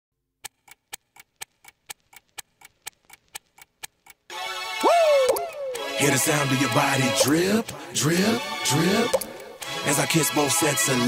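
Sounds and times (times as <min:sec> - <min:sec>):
clock ticking: 0:00.4 - 0:10.3.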